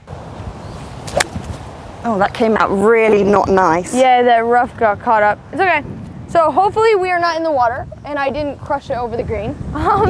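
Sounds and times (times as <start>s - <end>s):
golf club striking ball: 1.0s - 1.6s.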